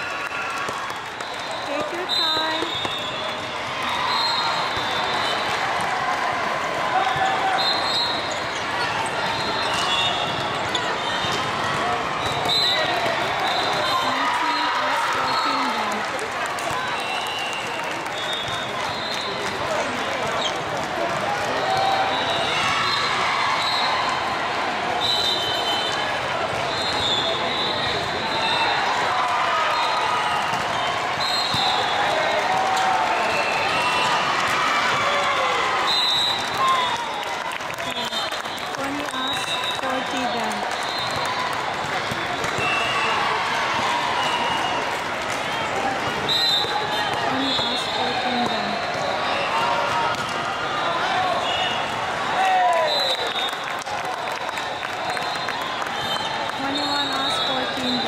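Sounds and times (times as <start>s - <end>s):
many overlapping voices: 3.4s - 17.0s, 37.5s - 52.6s
volleyballs bouncing and struck: 8.3s - 14.0s, 41.1s - 43.0s, 46.0s - 47.7s, 48.4s - 50.6s.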